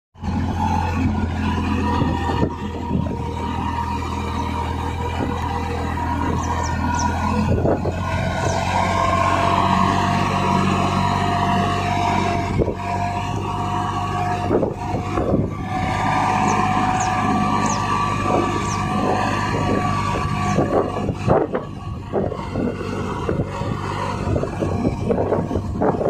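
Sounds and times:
tractor diesel engine under load: 0.2s - 26.0s.

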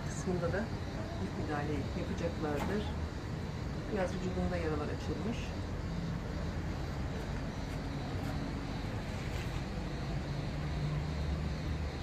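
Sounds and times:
background noise: 0.0s - 12.0s.

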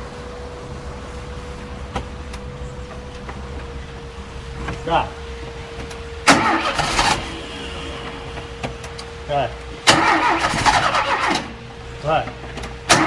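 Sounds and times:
car engine cranking: 4.5s - 11.7s, 12.3s - 13.0s.

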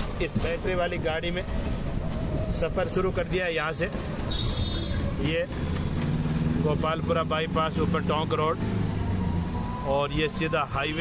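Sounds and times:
low road rumble: 0.0s - 11.0s
street traffic: 0.0s - 11.0s.

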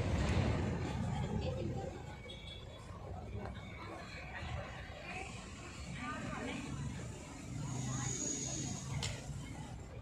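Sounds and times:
steady low rumble: 0.0s - 2.0s
faint indistinct voices: 0.0s - 10.0s.

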